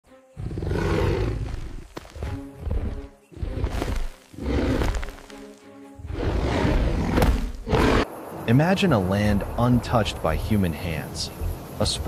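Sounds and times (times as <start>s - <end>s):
deep growling animal roar: 0.4s - 1.8s, 6.1s - 8.1s.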